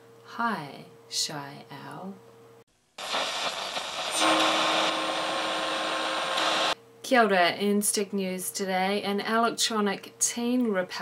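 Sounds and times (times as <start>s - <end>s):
rushing static-like noise: 3.0s - 6.8s
low hum tone: 3.2s - 6.8s.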